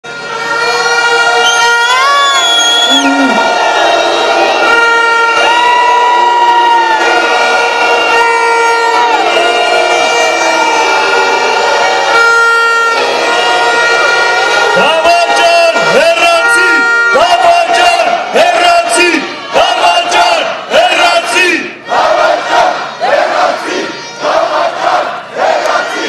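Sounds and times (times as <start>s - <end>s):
air horns: 0.0s - 26.0s
crowd noise: 0.0s - 26.0s
whistles: 1.4s - 3.3s.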